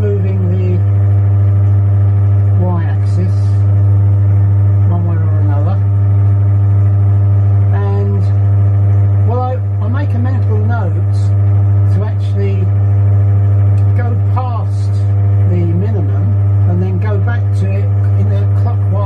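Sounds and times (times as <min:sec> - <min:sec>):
milling machine humming: 0:00.0 - 0:19.0.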